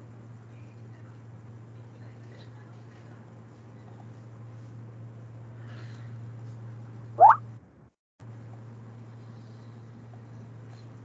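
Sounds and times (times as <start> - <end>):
short rising blip: 7.2 - 7.4.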